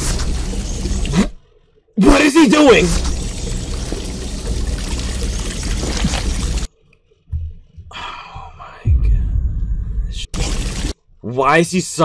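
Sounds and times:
low rumble: 3.2s - 11.0s.

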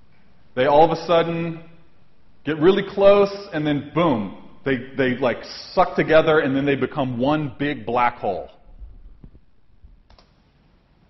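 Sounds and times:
faint clicks: 10.1s - 10.4s.

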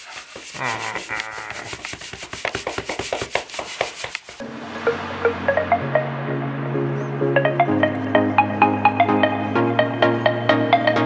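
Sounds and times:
clothing rubbing on microphone: 0.0s - 4.4s.

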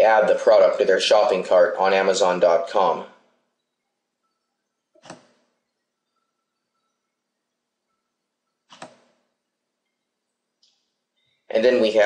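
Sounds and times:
computer mouse click: 5.0s - 5.4s, 8.7s - 9.0s.

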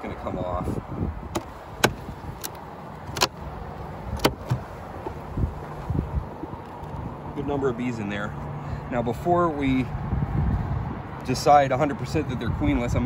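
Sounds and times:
dull knocks of wooden box: 1.4s - 2.0s.

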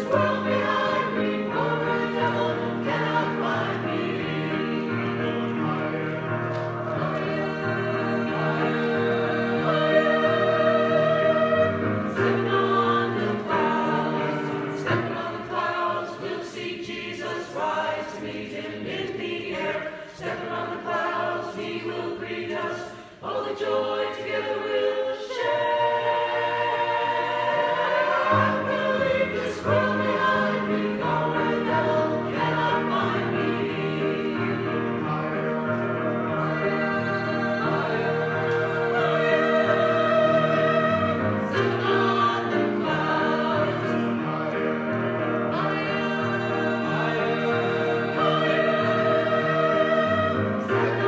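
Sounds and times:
church choir singing: 0.0s - 51.0s
musical accompaniment: 0.0s - 51.0s.

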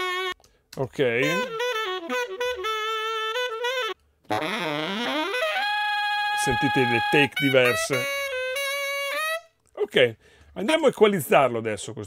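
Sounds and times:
saxophone phrase: 0.0s - 9.5s.

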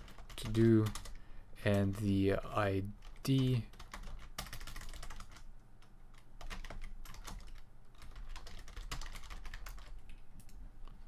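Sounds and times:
typing on computer keyboard: 0.0s - 2.0s, 3.0s - 10.6s.

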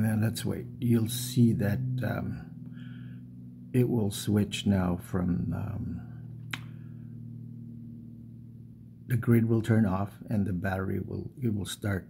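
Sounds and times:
steady low hum: 0.0s - 12.0s
sharp click: 6.4s - 6.8s.

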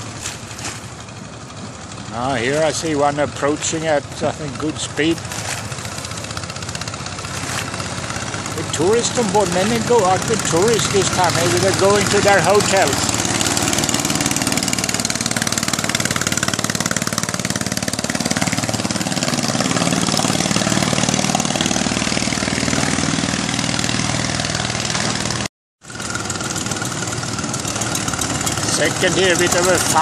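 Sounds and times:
boat engine running at speed: 0.0s - 30.0s.

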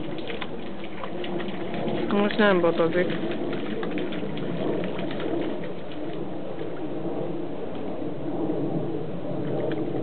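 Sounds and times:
small trickling splashes: 0.0s - 7.0s
creek water running: 0.0s - 8.2s.

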